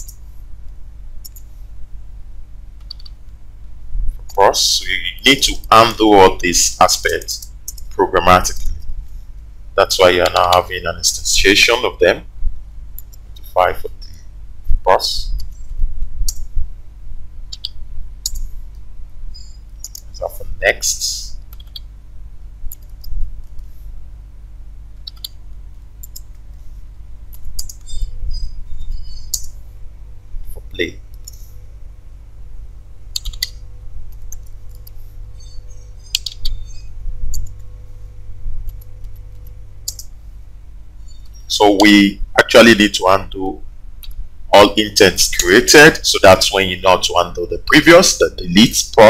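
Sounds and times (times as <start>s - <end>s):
low steady hum: 0.0s - 49.0s
keyboard and mouse clicks: 1.2s - 1.5s, 2.8s - 3.3s, 7.0s - 7.9s, 13.0s - 14.1s, 16.2s - 16.5s, 17.5s - 18.5s, 19.8s - 20.1s, 21.4s - 21.9s, 22.7s - 23.7s, 25.0s - 25.4s, 26.0s - 26.5s, 27.3s - 28.0s, 29.2s - 29.6s, 30.5s - 31.5s, 33.1s - 35.0s, 36.0s - 36.6s, 37.3s - 37.7s, 38.6s - 40.1s
keyboard keystrokes: 2.8s - 3.2s, 25.0s - 25.4s, 33.2s - 33.5s, 36.2s - 36.6s.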